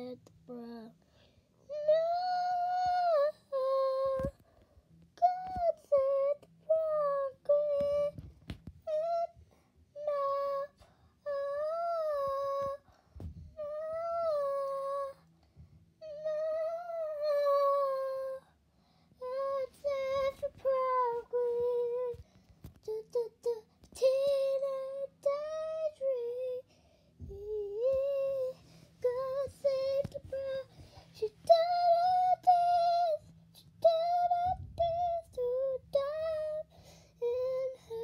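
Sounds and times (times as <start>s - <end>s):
woman singing unaccompanied: 27.3s - 33.2s.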